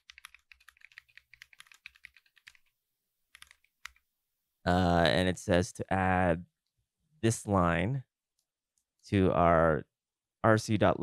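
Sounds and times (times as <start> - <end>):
keyboard typing: 0.0 - 2.7, 3.3 - 4.1.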